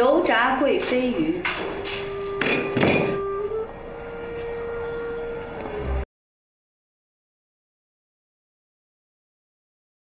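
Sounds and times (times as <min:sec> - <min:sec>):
background music low note: 0:00.0 - 0:06.1
plate knocking on wooden table: 0:02.4 - 0:03.2.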